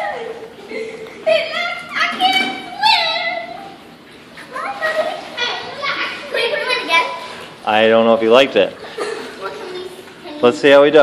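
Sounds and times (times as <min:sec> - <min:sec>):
children calling out and chattering: 0:00.0 - 0:07.6, 0:08.8 - 0:10.6.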